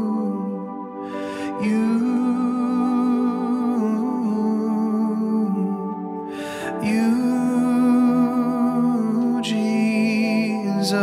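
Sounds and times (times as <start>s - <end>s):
man singing a long held note: 0.0s - 11.0s.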